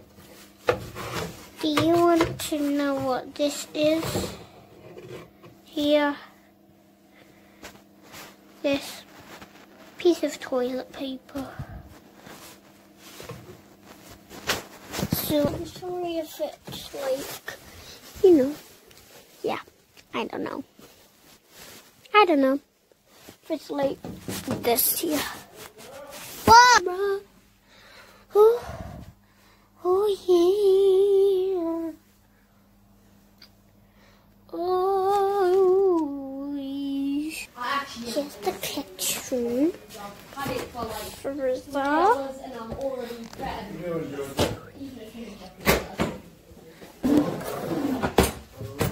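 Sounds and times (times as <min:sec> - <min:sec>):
faint low hum: 0:00.0 - 0:48.9.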